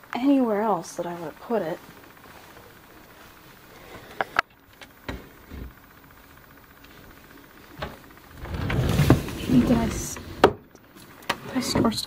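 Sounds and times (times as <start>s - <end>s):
furniture drawer sliding open: 7.9s - 10.6s.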